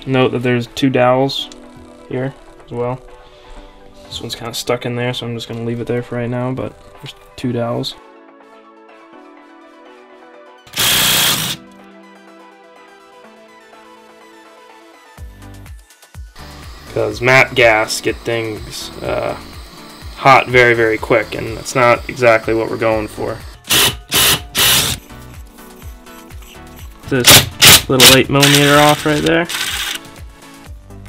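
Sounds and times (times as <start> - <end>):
background music: 0.0 - 31.0
cordless impact wrench hammering: 10.7 - 11.6, 23.7 - 25.0, 27.2 - 30.0.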